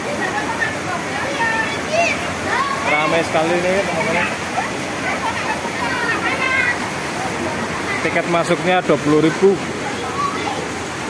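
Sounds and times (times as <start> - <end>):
crowd chattering: 0.0 - 11.0
water pouring and splashing: 0.0 - 11.0.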